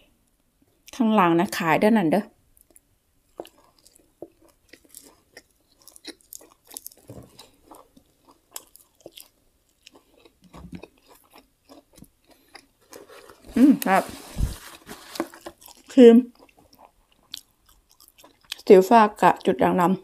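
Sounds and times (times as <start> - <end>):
chewing crunchy food: 2.6 - 19.6.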